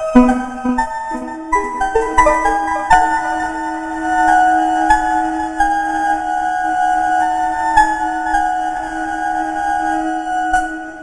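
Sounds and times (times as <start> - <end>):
synth flute held chord: 0.6 - 5.5.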